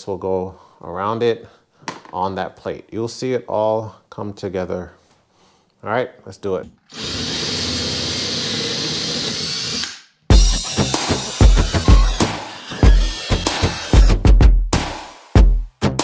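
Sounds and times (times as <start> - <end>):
cordless drill cutting plastic: 6.9 - 14.2
music with heavy bass beat: 10.3 - 16.0.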